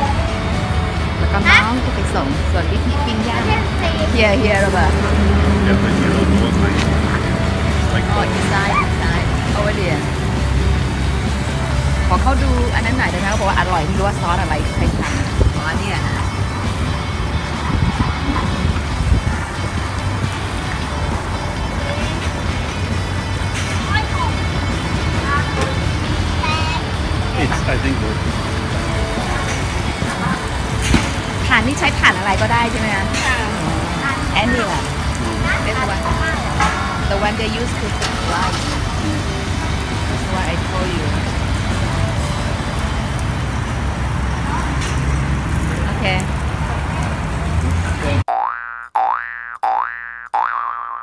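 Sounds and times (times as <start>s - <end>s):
passing traffic rumble: 0.0s - 48.3s
street background noise: 0.0s - 50.5s
faint voices: 1.1s - 10.8s
cartoon boing sound effect: 48.3s - 51.0s.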